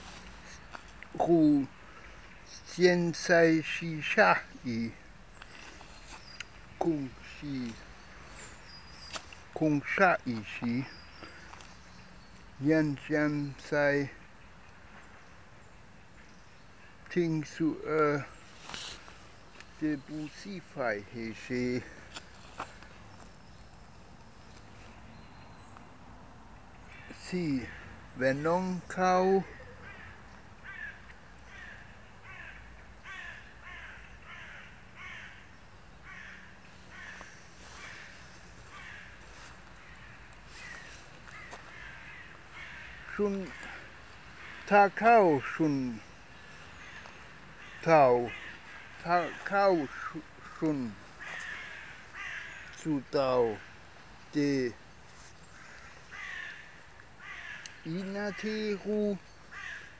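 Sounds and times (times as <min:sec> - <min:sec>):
person speaking: 0:00.0 - 0:01.8, 0:02.5 - 0:05.0, 0:06.7 - 0:08.0, 0:09.4 - 0:11.0, 0:19.7 - 0:22.1, 0:43.1 - 0:43.9, 0:44.6 - 0:46.1, 0:47.8 - 0:48.4, 0:49.0 - 0:51.0, 0:52.8 - 0:53.6, 0:54.3 - 0:54.8, 0:57.8 - 0:59.2
bird calling: 0:00.0 - 0:23.7, 0:26.7 - 0:59.9
crow cawing: 0:29.4 - 0:53.8, 0:55.5 - 0:58.9, 0:59.5 - 0:59.9.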